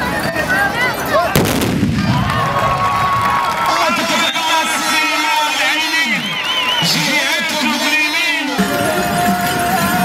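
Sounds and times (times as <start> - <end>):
musket volley blast: 1.3 - 2.8
low rumbling echo: 1.4 - 3.4.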